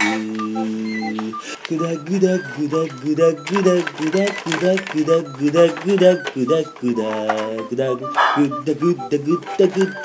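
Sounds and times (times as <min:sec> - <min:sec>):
men singing a jingle: 0:00.0 - 0:10.0.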